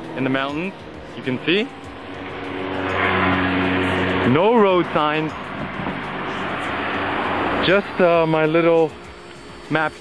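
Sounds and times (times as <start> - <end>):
scooter engine approaching: 0.0 - 10.0.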